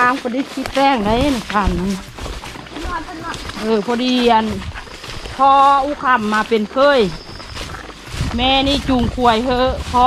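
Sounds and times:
woman talking: 0.0s - 2.1s, 3.3s - 4.7s, 5.3s - 7.2s, 8.3s - 10.0s.

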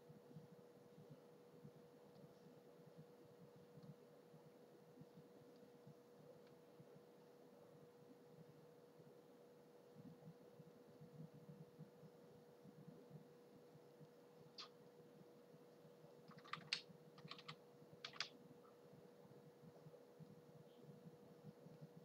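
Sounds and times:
faint electrical hum: 0.0s - 22.0s
keyboard key clicks: 16.3s - 18.3s.

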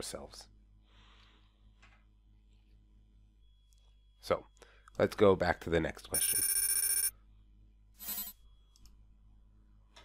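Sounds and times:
faint hum: 0.0s - 10.0s
electronic ringing tone: 6.2s - 7.2s, 8.0s - 8.7s.

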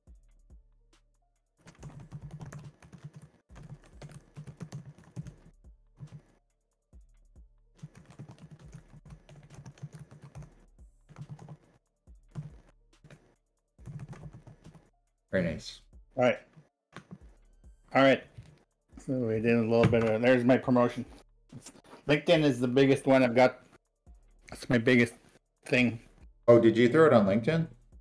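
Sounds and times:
computer keyboard typing: 1.6s - 6.2s, 7.8s - 11.7s, 12.3s - 13.2s, 13.8s - 14.9s.

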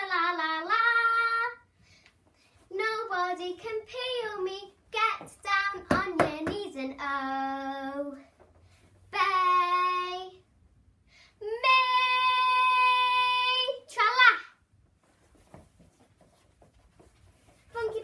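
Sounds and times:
girl singing without words: 0.0s - 1.7s, 2.7s - 8.4s, 9.1s - 10.5s, 11.3s - 14.4s.

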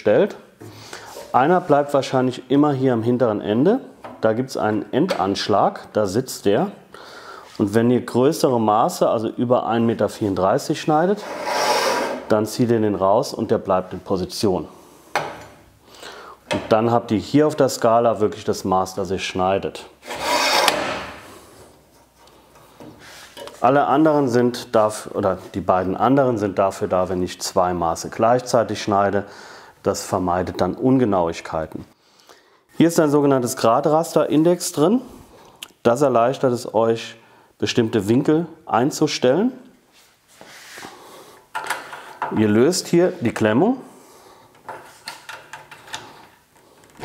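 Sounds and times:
metal scraping on metal: 11.1s - 12.4s, 20.0s - 21.2s
metal parts sliding: 11.2s - 12.3s, 20.0s - 21.2s.

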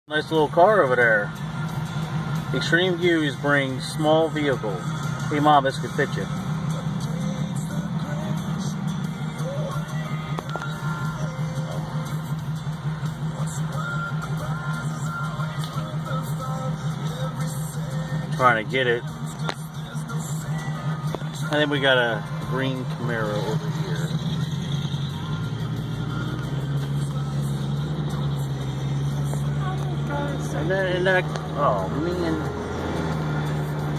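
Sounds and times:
quiet music playing: 0.1s - 33.9s
car cabin hum: 0.2s - 33.9s.

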